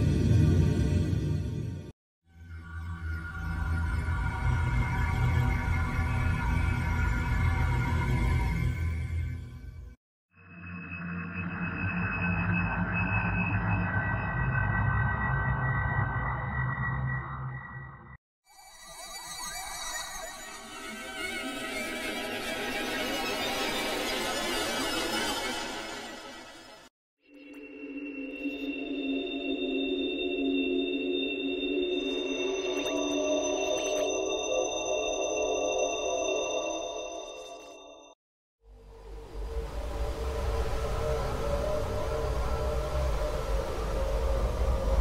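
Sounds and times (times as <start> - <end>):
low synth drone: 0.0 - 1.9, 38.7 - 45.0.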